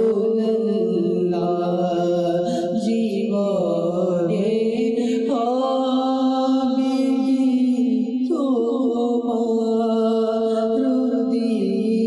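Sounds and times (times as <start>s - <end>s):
man chanting devotional recitation: 0.0s - 12.0s.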